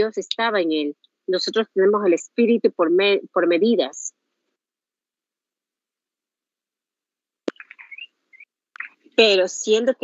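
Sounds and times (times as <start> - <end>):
mouth clicks: 7.4 - 9.2.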